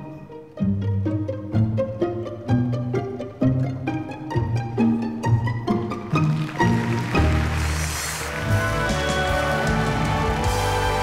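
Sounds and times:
orchestra playing held notes: 3.3 - 11.0
applause: 6.1 - 11.0.

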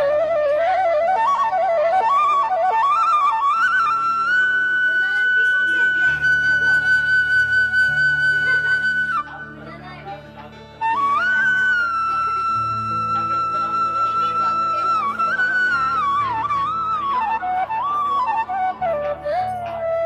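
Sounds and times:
flute melody: 0.0 - 20.0.

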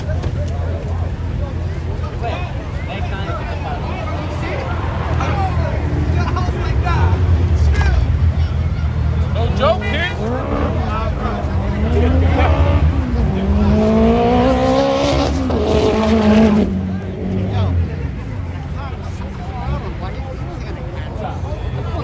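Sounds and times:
crowd voices: 0.0 - 22.0
car engine revving hard: 9.5 - 17.8.

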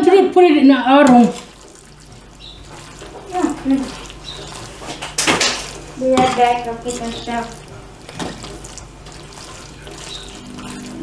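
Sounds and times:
spoon stirring pasta in pan: 0.0 - 11.0.

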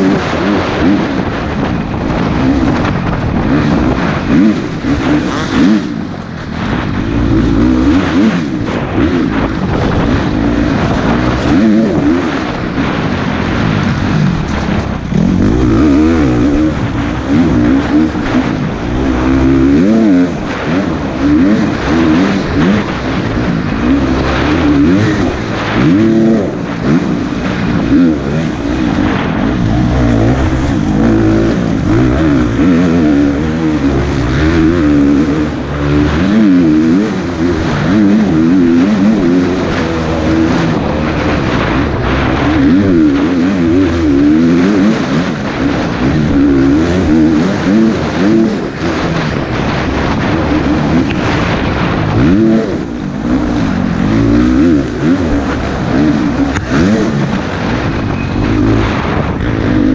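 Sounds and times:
dirt bike engine revving: 0.0 - 59.9
wind rushing: 0.0 - 59.9.

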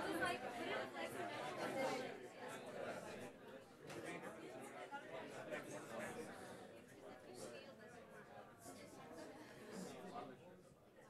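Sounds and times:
babble of overlapping conversations: 0.0 - 11.0.

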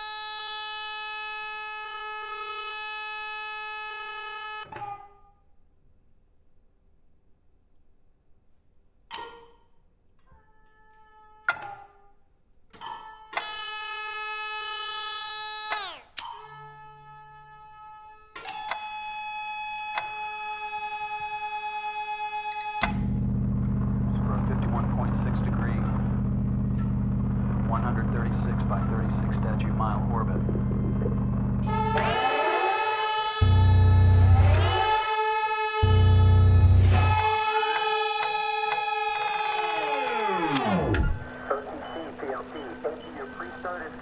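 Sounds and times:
loud buzzing hum with crackle: 22.7 - 32.8, 33.4 - 35.1, 35.8 - 38.2
chamber ensemble with electronics: 26.8 - 44.0.

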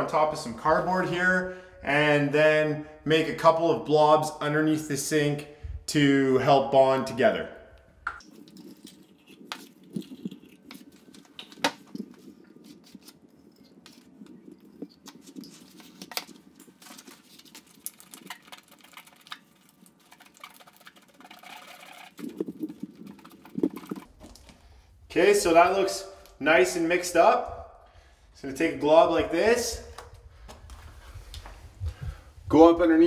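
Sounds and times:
wooden stick stirring epoxy: 8.2 - 24.5
epoxy squeezed onto cardboard: 15.0 - 24.5.

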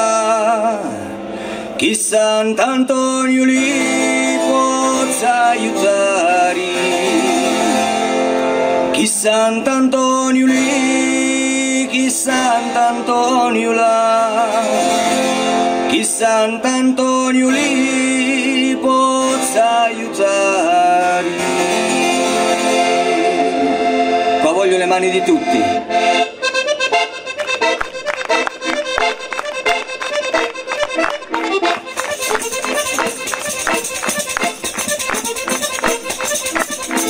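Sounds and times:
accordion chords: 0.0 - 37.0
acoustic guitar: 0.0 - 37.0
person singing: 1.8 - 8.0, 8.9 - 15.2, 15.9 - 24.4
sharp percussive beats: 27.3 - 37.0.

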